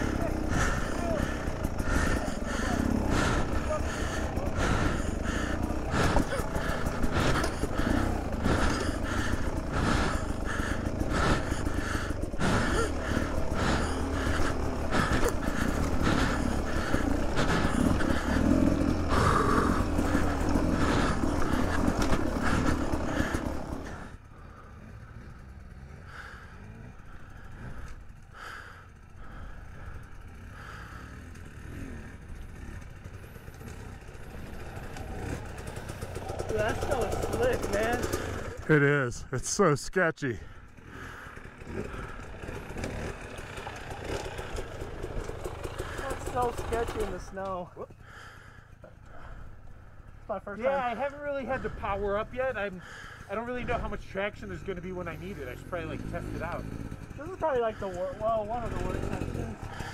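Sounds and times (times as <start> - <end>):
dirt bike engine running: 0.0 - 59.9.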